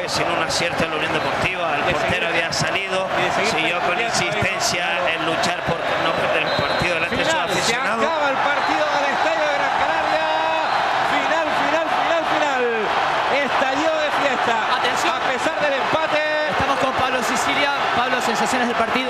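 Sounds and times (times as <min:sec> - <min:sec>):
stadium crowd shouting and chanting: 0:00.0 - 0:19.0.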